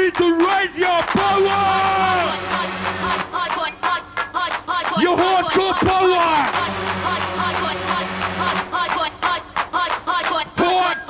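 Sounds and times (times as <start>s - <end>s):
electronic music descending notes: 1.2s - 4.3s, 5.0s - 9.5s
low steady hum: 1.2s - 4.3s, 5.0s - 9.6s.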